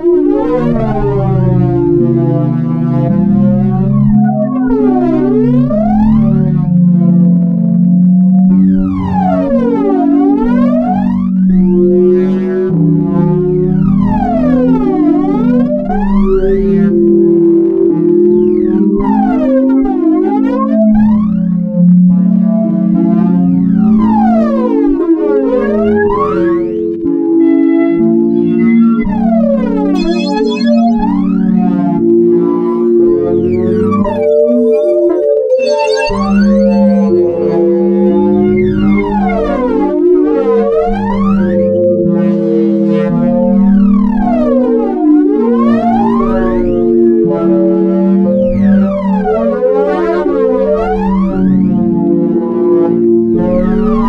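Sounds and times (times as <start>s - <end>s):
sweeping synthesizer glides: 30.0s - 31.2s.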